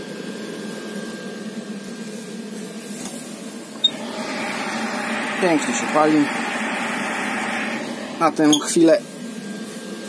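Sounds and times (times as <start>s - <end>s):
burner fire rushing: 3.8s - 8.9s
motor and gearbox humming: 3.8s - 8.9s.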